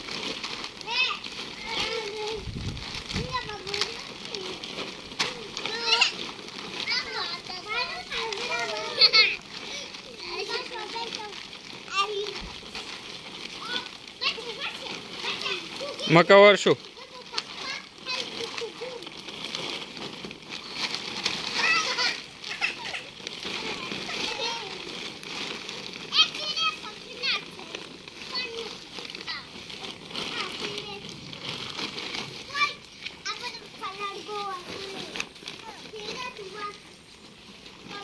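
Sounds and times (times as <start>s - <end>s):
children chattering at play: 0.0s - 38.0s.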